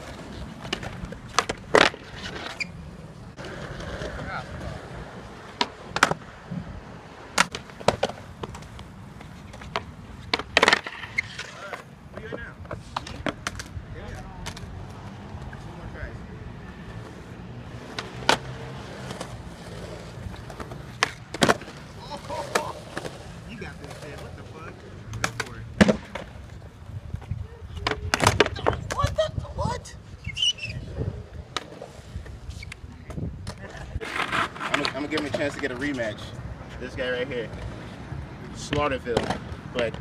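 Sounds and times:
skateboard tail popping: 0.0s - 2.6s, 5.4s - 6.7s, 7.3s - 15.6s, 17.8s - 29.2s
skateboard wheels rolling on concrete: 0.0s - 40.0s
skateboard slapping down: 0.1s - 2.6s, 7.3s - 12.4s, 17.9s - 24.3s, 25.1s - 26.4s, 27.7s - 29.2s.

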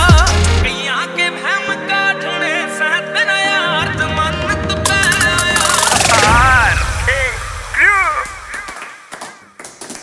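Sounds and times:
music with gliding vocal note: 0.0s - 8.6s.

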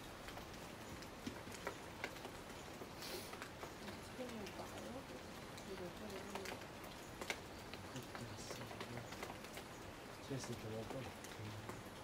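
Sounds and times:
light ticks: 0.0s - 12.0s
distant voices talking: 3.8s - 12.0s.

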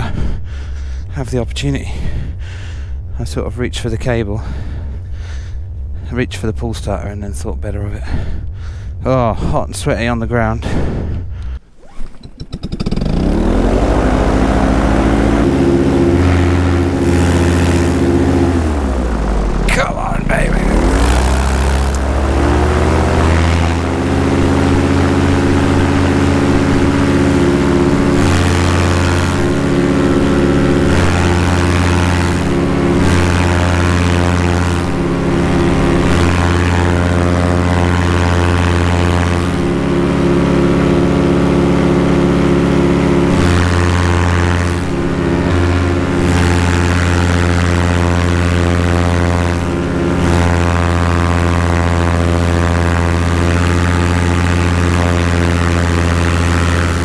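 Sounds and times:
paramotor engine droning: 11.0s - 57.0s.

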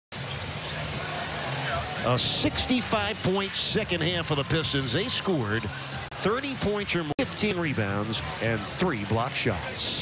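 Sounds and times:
crowd talking in large hall: 0.1s - 10.0s.

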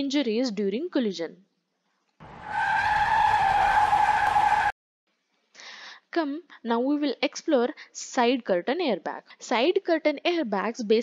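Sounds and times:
rushing noise: 2.2s - 4.7s
high squeal: 2.2s - 4.8s.

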